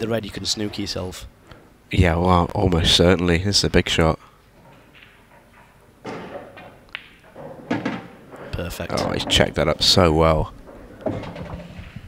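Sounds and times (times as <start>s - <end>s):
billiard balls clicking: 4.5s - 12.0s
pool cue striking ball: 4.7s - 12.0s.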